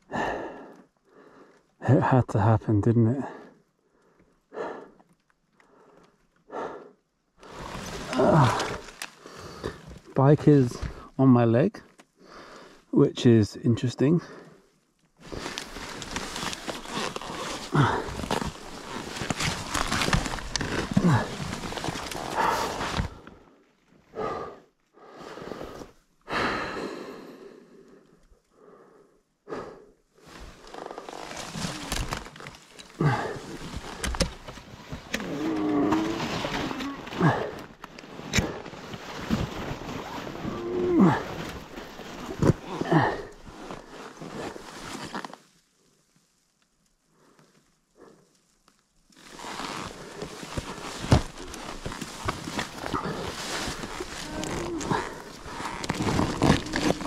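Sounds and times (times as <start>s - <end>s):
person breathing and grunting: 0.1s - 1.5s, 4.5s - 5.0s, 5.7s - 10.1s, 15.3s - 23.5s, 24.1s - 31.0s, 32.9s - 34.3s, 35.2s - 37.8s, 38.4s - 44.6s, 49.8s - 57.0s
person breathing hard: 0.1s - 1.6s, 3.4s - 5.0s, 24.1s - 30.0s
faint rustling: 14.9s - 24.0s, 30.2s - 57.0s.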